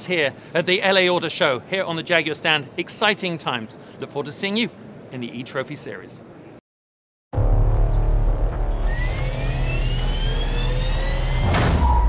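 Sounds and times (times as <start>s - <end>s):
rising electronic whine: 7.4s - 12.0s.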